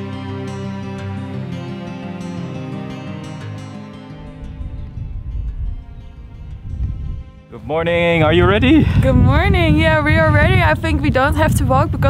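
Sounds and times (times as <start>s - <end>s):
background music: 0.0s - 12.0s
wind gusting on microphone: 4.2s - 12.0s.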